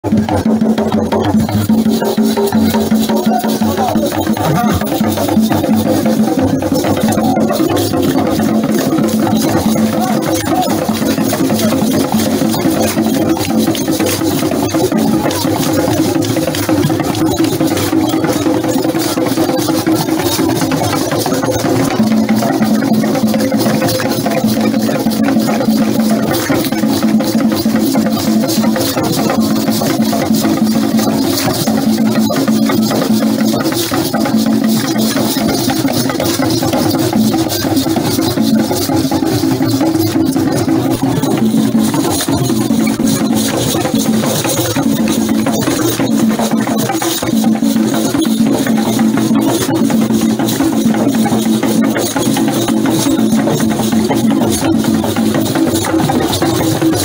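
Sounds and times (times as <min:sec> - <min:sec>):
drums: 0:00.0 - 0:57.0
rapid clicking percussion: 0:00.0 - 0:57.0.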